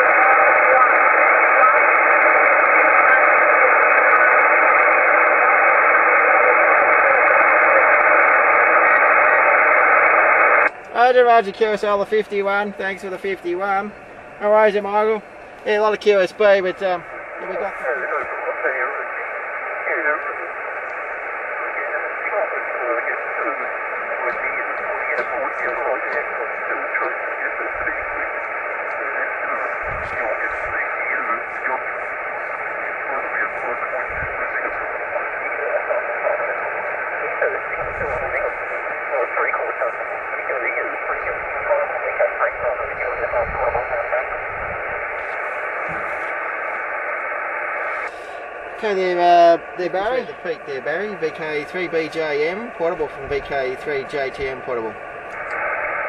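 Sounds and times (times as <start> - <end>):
faint radio voice talking: 0.0 - 46.8, 47.7 - 55.0
steady receiver hiss: 0.0 - 56.0.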